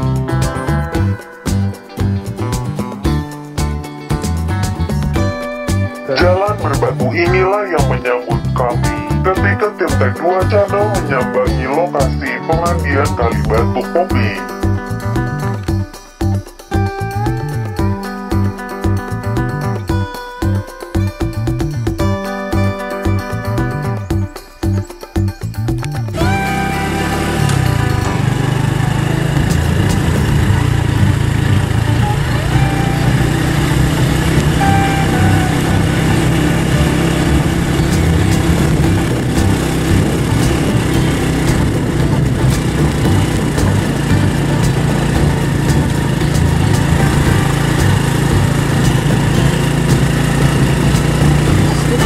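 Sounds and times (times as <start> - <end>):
small motorcycle engine running: 26.1 - 52.0.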